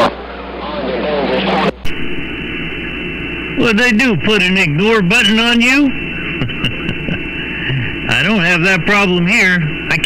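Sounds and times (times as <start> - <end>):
faint garbled radio signals: 0.0 - 10.0
radio static and hiss: 0.0 - 10.0.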